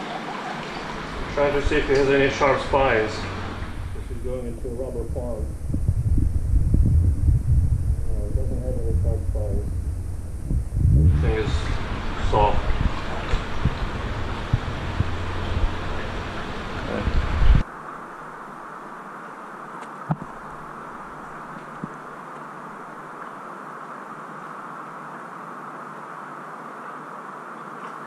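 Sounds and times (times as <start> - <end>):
steady hiss: 0.0 - 28.0
loud low rumble: 0.9 - 17.6.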